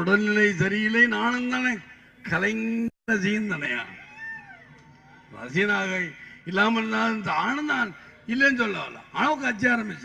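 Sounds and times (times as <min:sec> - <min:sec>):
man speaking through loudspeaker: 0:00.0 - 0:04.2, 0:05.2 - 0:10.0.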